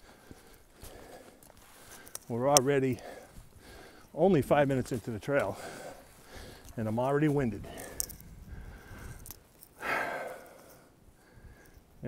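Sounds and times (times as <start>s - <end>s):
man breathing hard: 0.0s - 2.3s, 3.0s - 4.2s, 5.4s - 6.8s, 7.6s - 11.9s.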